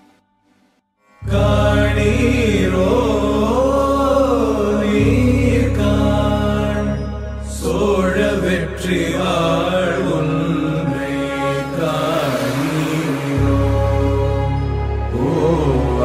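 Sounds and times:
low drone: 1.2 - 16.0
person chanting: 1.2 - 16.0.

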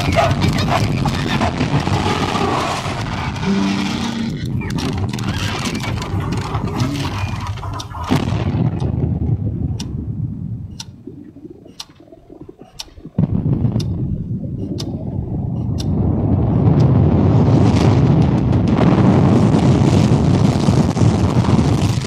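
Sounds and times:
deep rumble: 0.0 - 22.0
dense noise: 0.0 - 22.0
clock ticking: 5.8 - 9.0, 10.7 - 16.0.

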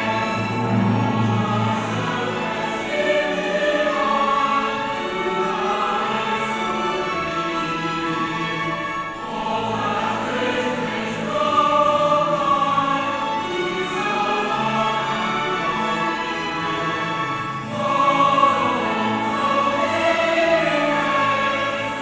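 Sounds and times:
group singing a hymn: 0.0 - 22.0.

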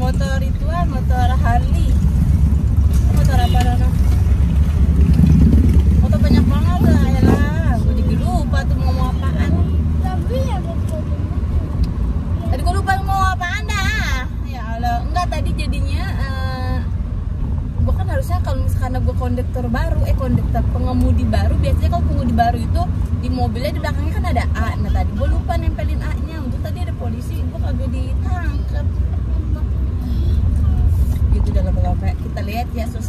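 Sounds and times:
car road and engine rumble: 0.0 - 33.0.

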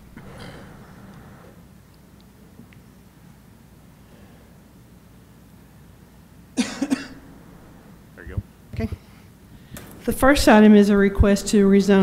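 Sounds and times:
person coughing: 6.6 - 7.3.

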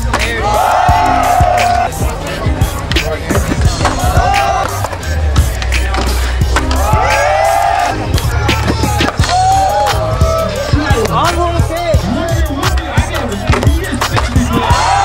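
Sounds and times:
skateboard wheels rolling on concrete: 0.0 - 11.8
music with steady bass line: 0.0 - 15.0.

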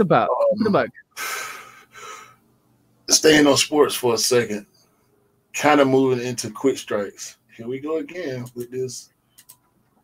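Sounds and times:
man breathing in: 1.2 - 2.4.

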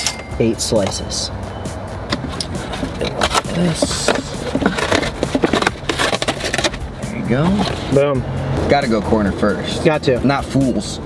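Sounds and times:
cardboard box sliding: 2.6 - 6.8
paper bag rustling: 2.6 - 6.8.

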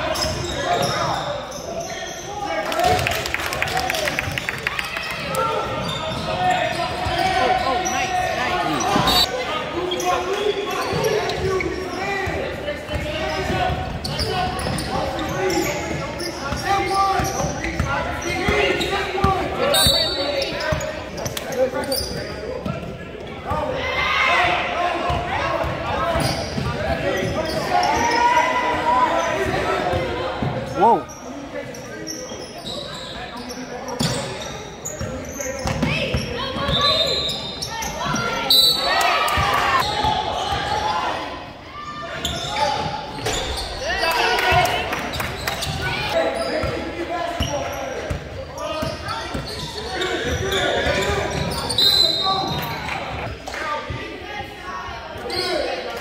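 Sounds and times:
people shouting and chattering: 0.0 - 56.0.

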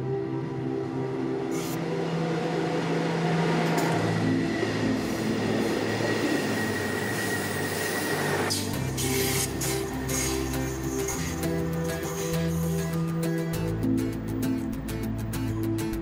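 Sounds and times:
background music: 0.0 - 16.0
loud rushing noise with high whine: 1.0 - 11.5.

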